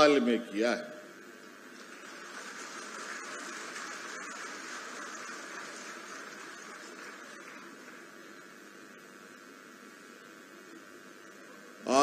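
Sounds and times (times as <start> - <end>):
faint audience applause: 1.6 - 8.4.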